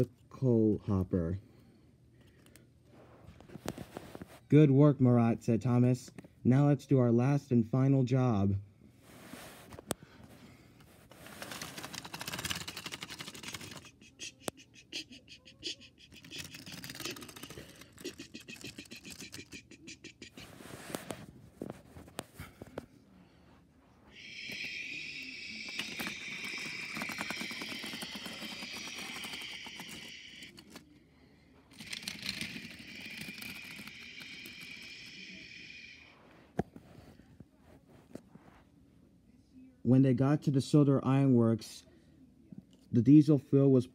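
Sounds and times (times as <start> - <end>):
toy train motor whirring: 11.2 - 14.4, 16.1 - 19.8, 24.1 - 30.9, 31.7 - 36.1
plastic toy parts clicking: 11.4 - 13.9, 25.8 - 30.8, 31.7 - 35.2.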